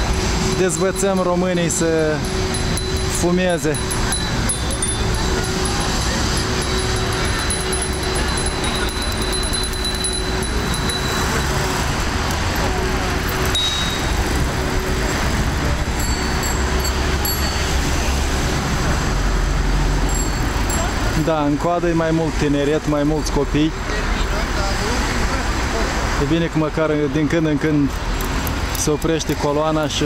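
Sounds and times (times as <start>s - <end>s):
voices: 0.0s - 19.4s, 20.0s - 28.0s
cyclists riding past: 0.0s - 21.3s
traffic rumble: 0.0s - 30.0s.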